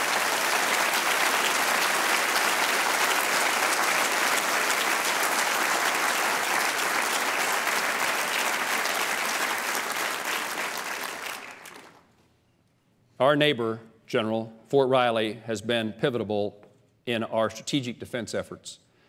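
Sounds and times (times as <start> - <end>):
audience applauding: 0.0 - 12.1.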